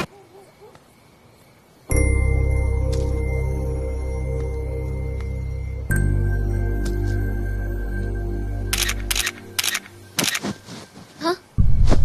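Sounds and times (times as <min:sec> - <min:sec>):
soft background music: 0:01.9 - 0:10.8
camera shutter clicks: 0:08.7 - 0:10.5.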